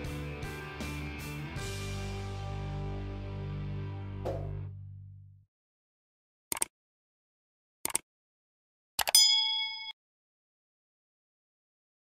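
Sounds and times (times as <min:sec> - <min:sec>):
mouse click: 0:07.8 - 0:08.0
bright bell ding: 0:09.2 - 0:10.0.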